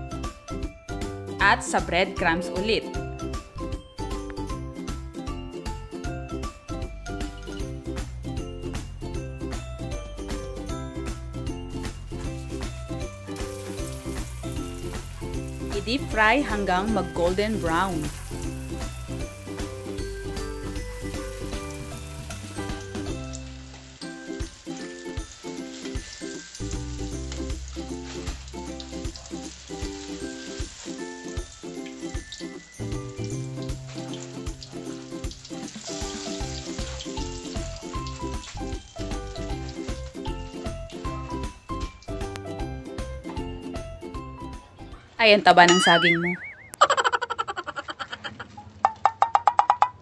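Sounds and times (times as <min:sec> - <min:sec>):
background music: 0:00.0 - 0:50.0
food deep-frying in oil: 0:08.6 - 0:43.0.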